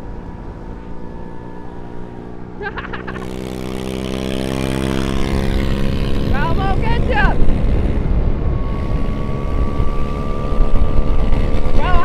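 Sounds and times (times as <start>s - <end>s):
electric motor drone: 0.0s - 12.0s
wind rush: 4.8s - 12.0s.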